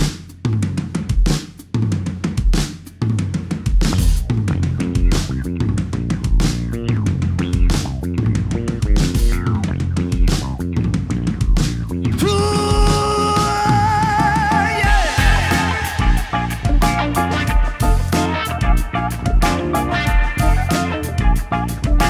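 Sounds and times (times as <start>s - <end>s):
drum kit playing: 0.0s - 22.0s
low bass line: 4.0s - 22.0s
electric guitars: 14.6s - 22.0s.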